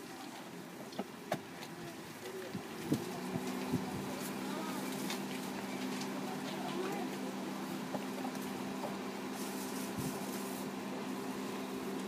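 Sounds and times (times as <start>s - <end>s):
faint distant voices: 0.0s - 12.0s
low engine hum: 1.4s - 12.0s.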